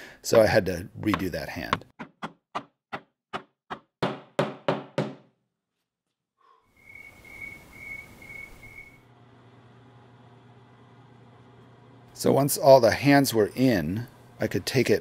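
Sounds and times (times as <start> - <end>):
mallet knocking on wood: 1.1 - 5.3
hiss with high whistle: 6.8 - 9.0.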